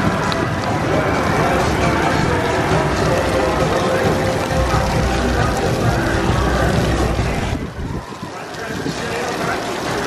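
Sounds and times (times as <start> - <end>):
people's voices: 0.0 - 10.0
roller coaster rumbling on track: 0.0 - 10.0.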